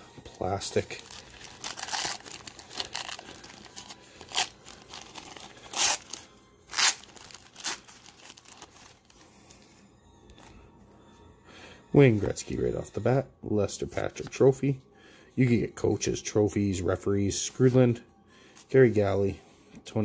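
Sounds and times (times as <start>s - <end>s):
plastic wrapper tearing and crinkling: 0.3s - 9.2s.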